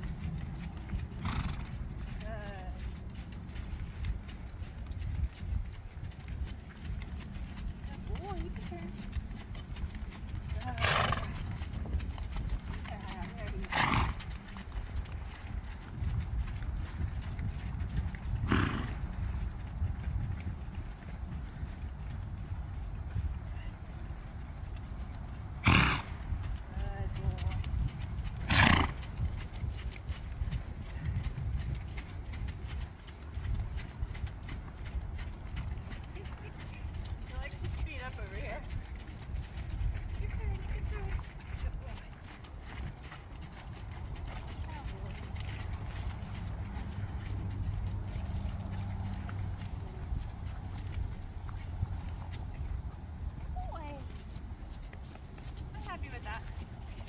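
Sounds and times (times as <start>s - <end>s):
muffled hoofbeats on sand: 0.0s - 57.0s
horse snorting: 1.1s - 1.8s, 10.6s - 11.6s, 13.2s - 14.5s, 18.4s - 19.0s, 25.6s - 26.2s, 28.4s - 29.0s.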